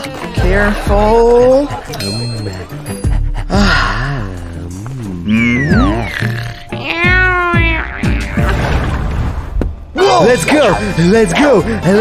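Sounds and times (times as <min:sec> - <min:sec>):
background music: 0:00.0 - 0:12.0
cat meowing: 0:05.6 - 0:08.6.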